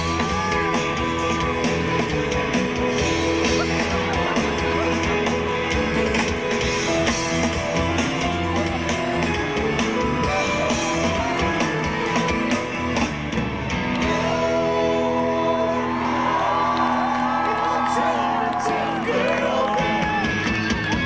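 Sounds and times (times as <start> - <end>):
live rock band playing: 0.0 - 15.6, 19.7 - 21.0
electric guitar strumming: 0.0 - 15.8
person singing: 14.0 - 20.3.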